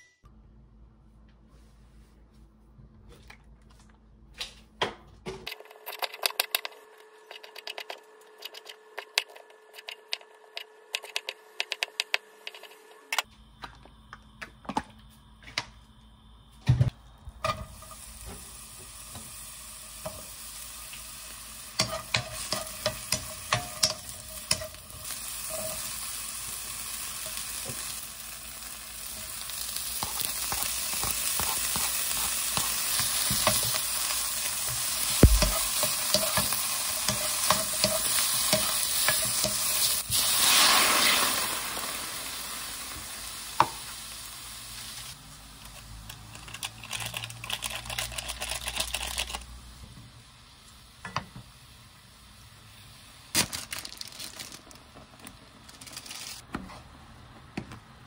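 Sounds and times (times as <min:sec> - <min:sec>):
food sizzling in oil: 0:17.3 - 0:45.7.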